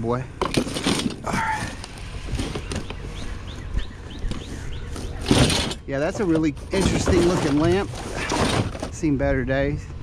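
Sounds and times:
scrap metal box clattering: 0.4 - 2.9, 5.0 - 9.0.

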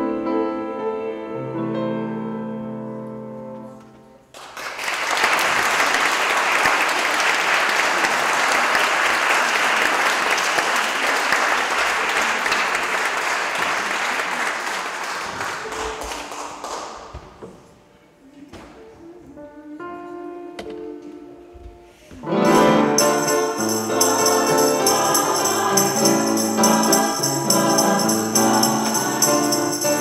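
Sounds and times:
audience applauding in a hall: 4.3 - 17.4.

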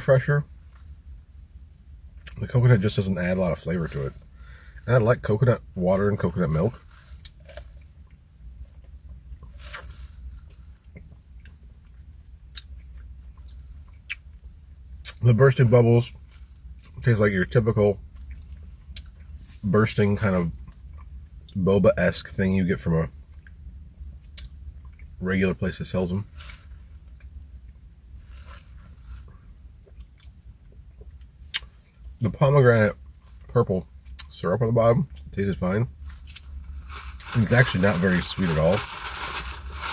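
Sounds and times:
low steady hum: 0.0 - 39.9.

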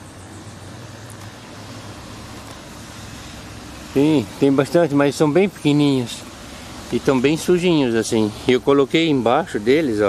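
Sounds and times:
even hiss: 0.0 - 10.0.

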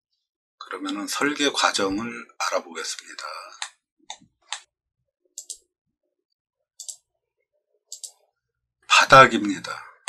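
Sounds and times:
computer mouse clicking: 5.4 - 5.6, 6.8 - 7.0, 7.9 - 8.2.

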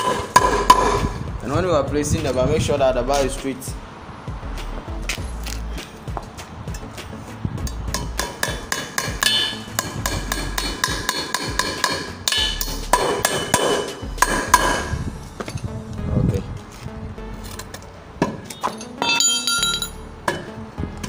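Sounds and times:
hammer striking nails: 0.0 - 1.1, 8.2 - 14.9.

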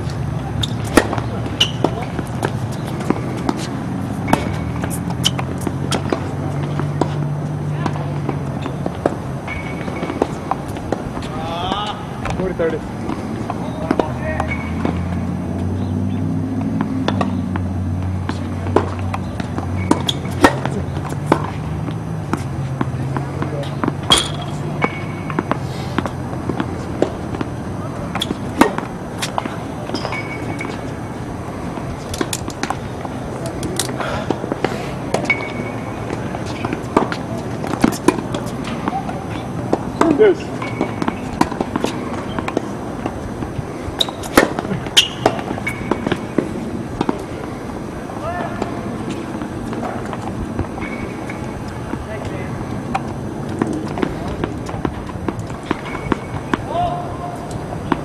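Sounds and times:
balls bouncing on hard court: 0.0 - 58.0
tennis balls hit by rackets: 0.0 - 58.0.

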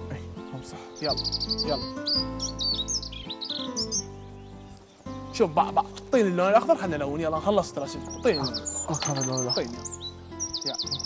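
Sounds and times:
soft background music: 0.0 - 11.0
high bird chirps: 0.4 - 6.1, 7.8 - 11.0.

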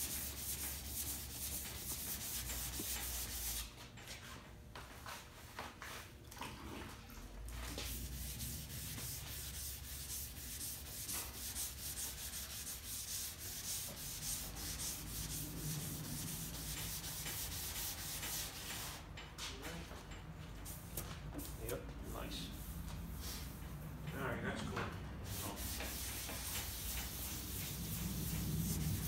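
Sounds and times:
sandpaper rasping on metal: 7.9 - 18.9, 25.3 - 29.0.

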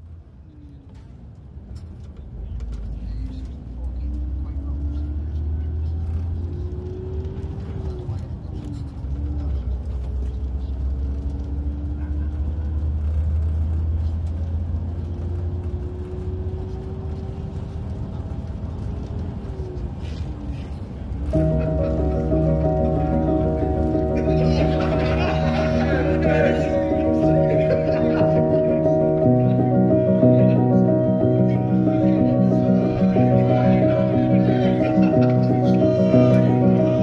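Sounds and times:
coach engine and road rumble: 0.0 - 37.0.

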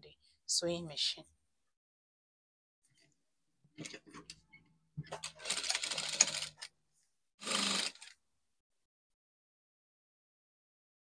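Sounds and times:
sewing machine clicks: 5.1 - 6.7
sewing machine stitching: 5.1 - 6.7, 7.4 - 8.2.

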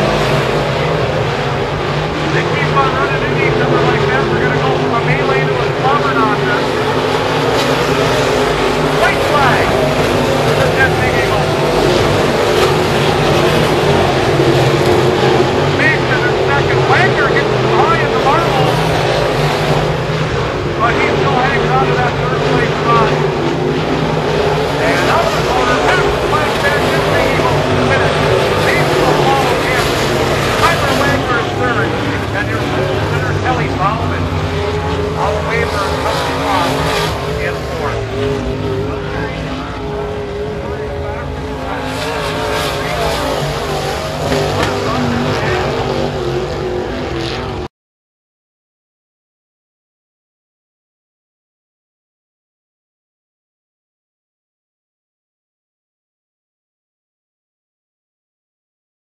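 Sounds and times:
race car engines running: 0.0 - 47.7.

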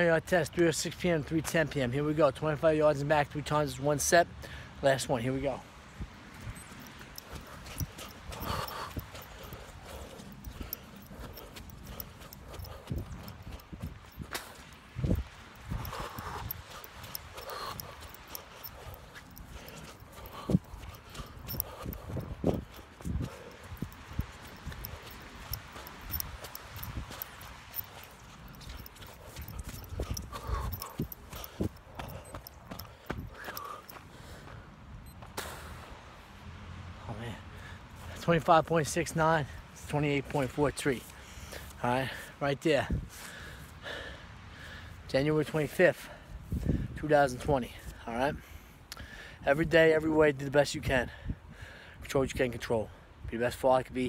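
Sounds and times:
running footsteps: 6.3 - 35.4.

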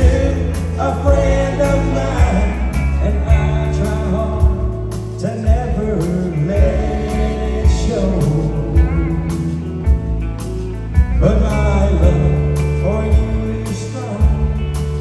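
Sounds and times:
man singing into a microphone: 0.0 - 9.7, 11.2 - 15.0
country band playing a ballad: 0.0 - 15.0.

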